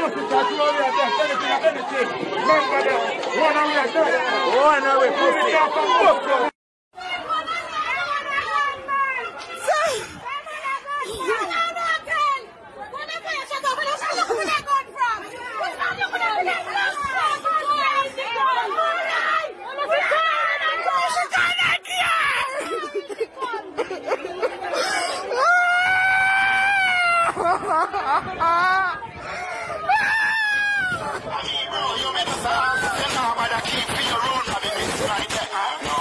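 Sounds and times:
people talking: 26.9s - 36.0s.

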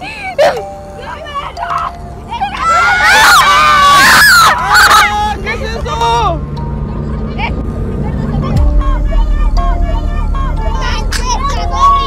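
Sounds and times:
children calling out: 0.0s - 6.4s, 7.6s - 12.0s
background music: 0.0s - 12.0s
car rumble: 0.0s - 12.0s
wind: 0.0s - 12.0s.

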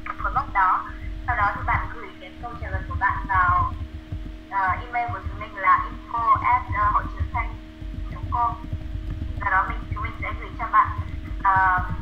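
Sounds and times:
person talking over video call: 0.0s - 3.8s, 4.5s - 8.7s, 9.4s - 12.0s
steady low hum: 0.0s - 12.0s.

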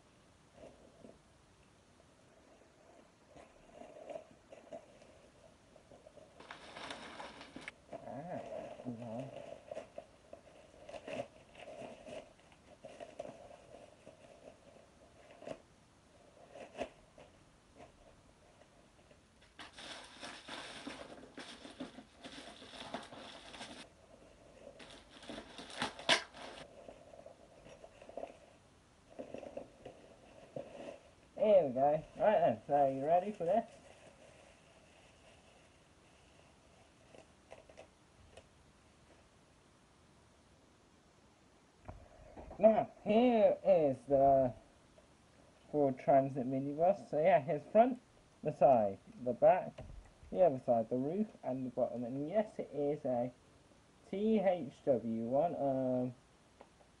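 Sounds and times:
plastic packaging crinkling and tearing: 6.3s - 15.6s, 19.4s - 23.9s, 24.5s - 28.5s, 29.1s - 35.8s.

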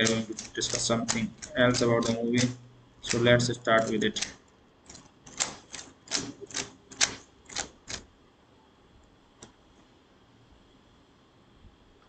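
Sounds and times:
computer keyboard typing: 0.0s - 8.1s.

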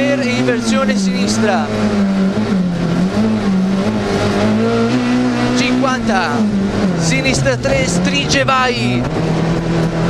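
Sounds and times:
rally car engine revving: 0.0s - 10.0s.

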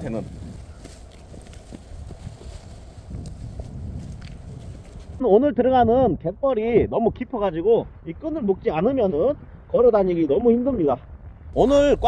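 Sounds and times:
low wind rumble on microphone: 0.0s - 12.0s
footsteps on loose stones: 0.4s - 5.2s.

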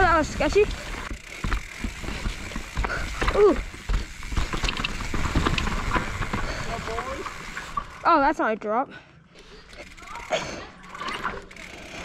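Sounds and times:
bike rattling over roots and rocks: 0.0s - 8.6s, 9.5s - 12.0s
bike tyres on dirt trail: 0.0s - 12.0s.

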